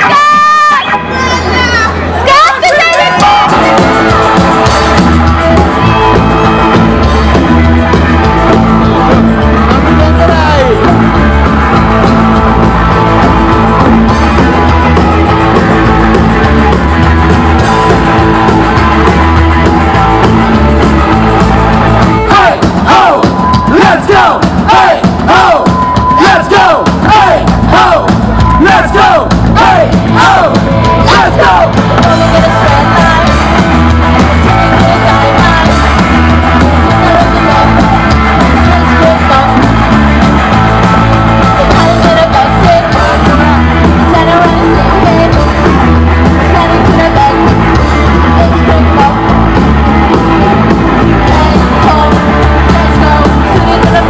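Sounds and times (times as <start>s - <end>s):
punk rock band playing: 0.0s - 54.0s
electric guitar bending high notes: 2.8s - 24.2s.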